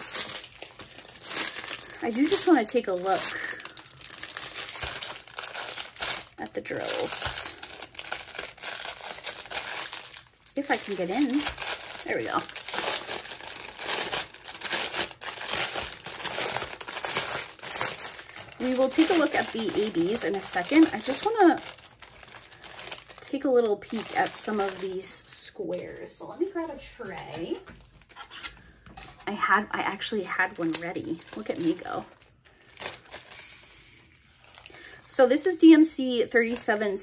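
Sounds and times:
plastic packaging crinkling: 0.0 - 37.0.

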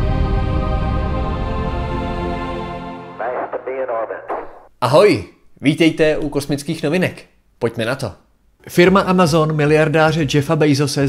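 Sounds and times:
intro music: 0.0 - 3.5
man speaking a greeting: 3.2 - 6.4
person speaking: 3.2 - 8.0.

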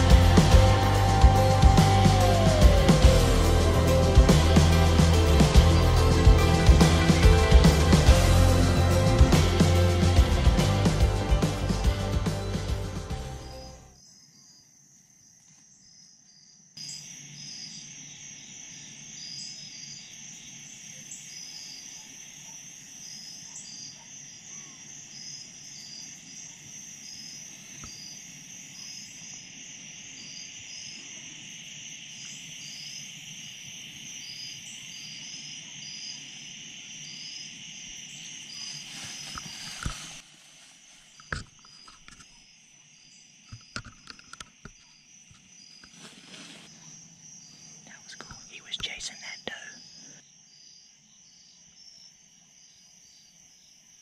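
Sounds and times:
crickets and insects trilling: 0.0 - 54.0.

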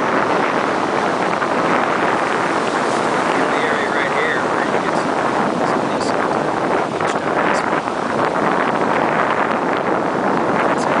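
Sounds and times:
surf washing onto beach: 0.0 - 11.0
wind blowing across microphone: 0.0 - 11.0.

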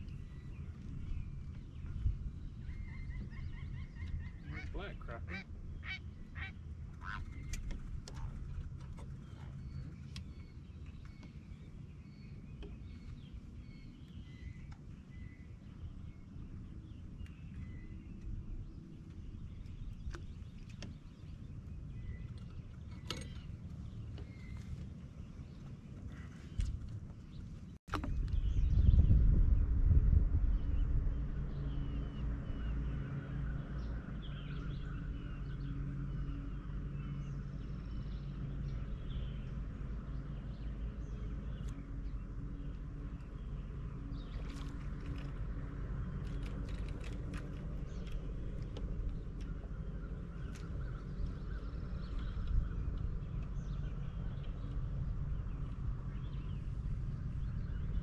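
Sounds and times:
faint bird calls: 0.0 - 16.1
low wind rumble on microphone: 0.0 - 58.0.

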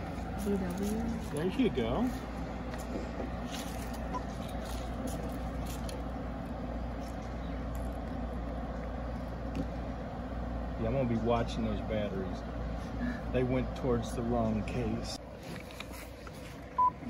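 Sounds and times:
engine idling hum: 0.0 - 17.0.

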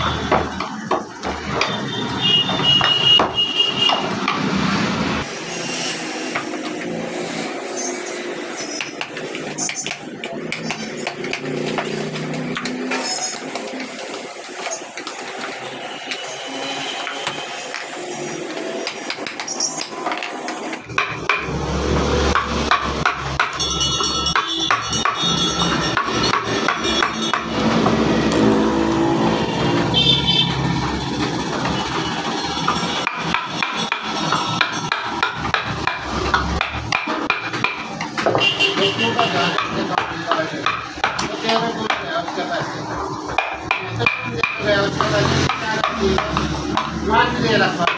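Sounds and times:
mallet knocking on chisel: 18.8 - 21.6, 22.3 - 28.0, 32.6 - 42.1, 43.3 - 47.0.

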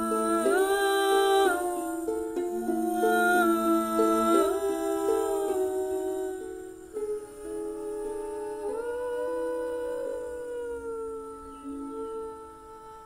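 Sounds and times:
layered wordless humming: 0.0 - 13.0.

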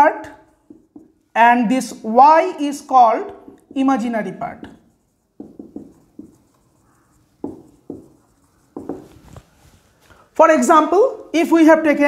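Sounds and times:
marker pen writing on whiteboard: 0.0 - 10.0.

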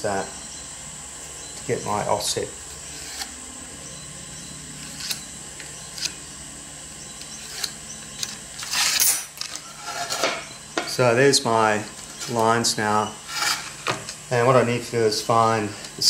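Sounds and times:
steady hum: 0.0 - 16.0.

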